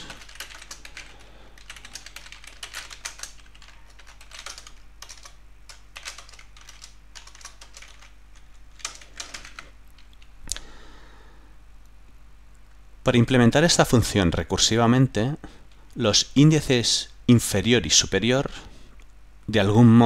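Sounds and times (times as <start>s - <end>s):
typing on computer keyboard: 0.0s - 10.2s.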